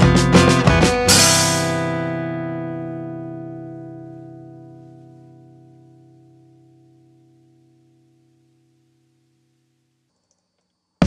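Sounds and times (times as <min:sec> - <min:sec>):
guitar chord ringing: 0:00.0 - 0:09.4.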